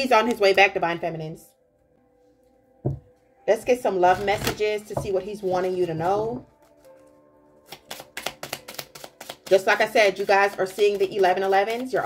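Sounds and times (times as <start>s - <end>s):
soft background music: 0.0s - 12.0s
cards being shuffled: 5.4s - 12.0s.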